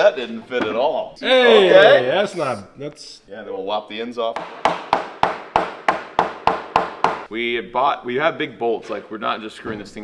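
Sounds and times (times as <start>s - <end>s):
hammer striking wood: 4.4s - 7.3s.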